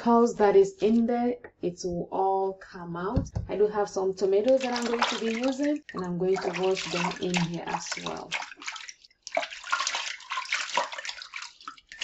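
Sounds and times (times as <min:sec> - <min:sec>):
hands splashing in water: 0:04.4 - 0:12.0.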